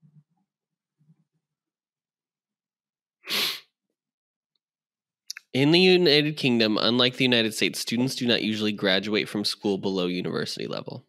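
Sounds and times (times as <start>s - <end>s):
person sneezing: 3.3s - 3.7s.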